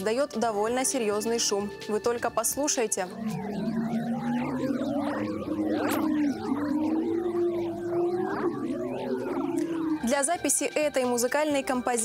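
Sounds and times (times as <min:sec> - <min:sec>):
warbling gliding tones: 0:03.0 - 0:10.8
sustained low hum: 0:03.1 - 0:10.1.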